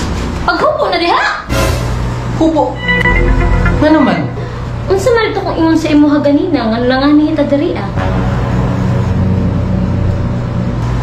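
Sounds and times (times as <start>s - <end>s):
loud low drone: 1.5s - 5.4s.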